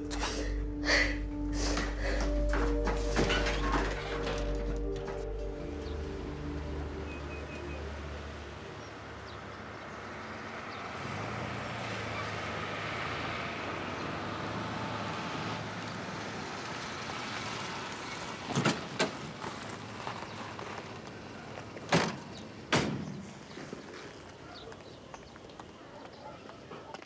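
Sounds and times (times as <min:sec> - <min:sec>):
car driving on gravel: 0:01.9 - 0:26.8.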